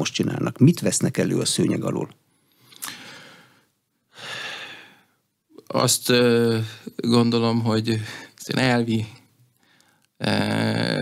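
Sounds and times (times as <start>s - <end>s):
man talking: 0.0s - 2.2s, 5.6s - 9.3s, 10.2s - 11.0s.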